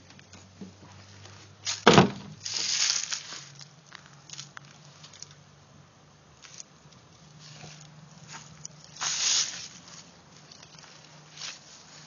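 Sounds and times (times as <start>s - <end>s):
footsteps in dry leaves: 0.9s - 5.2s, 6.4s - 12.0s.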